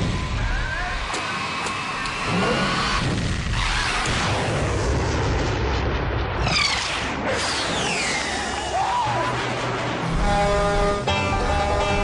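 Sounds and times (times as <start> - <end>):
drag racing cars engines: 0.0 - 4.8, 6.4 - 12.0.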